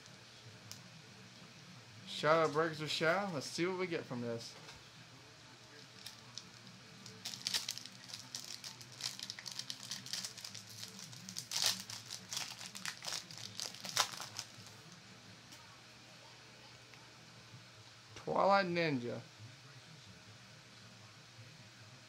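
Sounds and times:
foil wrapper crinkling and tearing: 5.8 - 15.0.

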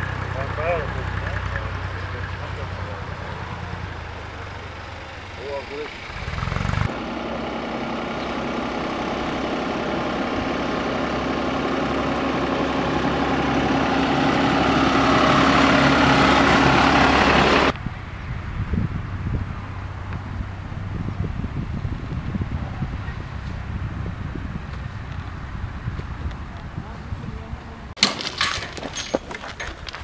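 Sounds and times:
tractor engine running: 0.0 - 30.0.

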